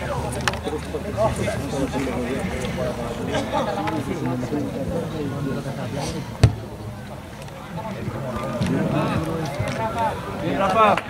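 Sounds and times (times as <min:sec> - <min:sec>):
boot kicking ball thud: 0:06.4 - 0:06.6.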